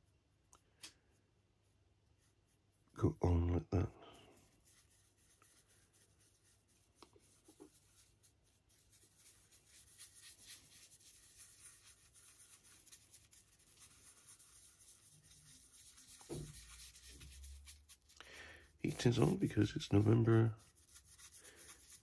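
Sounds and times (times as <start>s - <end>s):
paintbrush scratching: 1.6s - 3.1s, 4.1s - 22.0s.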